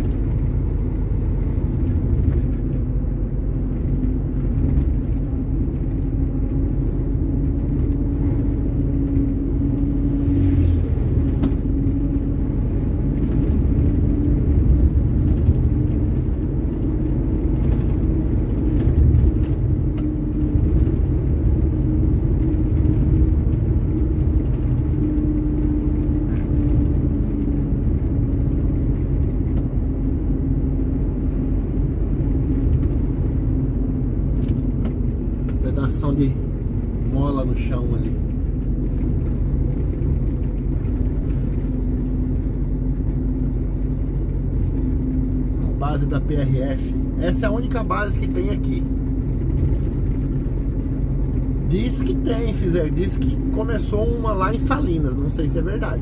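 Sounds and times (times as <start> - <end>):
truck engine and tyre rumble: 0.0 - 56.0.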